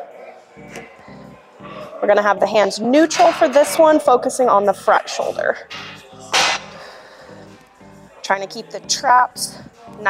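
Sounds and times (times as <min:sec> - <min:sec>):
background music with low notes: 0:00.0 - 0:10.0.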